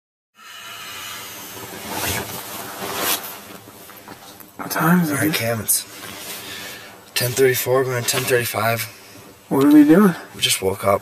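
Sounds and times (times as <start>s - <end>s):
rustling or zipping: 1.6s - 3.9s
man speaking: 4.6s - 5.9s, 7.2s - 11.0s.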